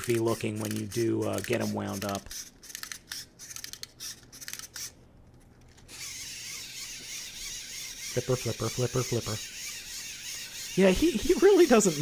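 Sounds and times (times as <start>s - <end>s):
wind-up toy ratcheting clicks: 0.0s - 5.0s, 5.9s - 12.0s.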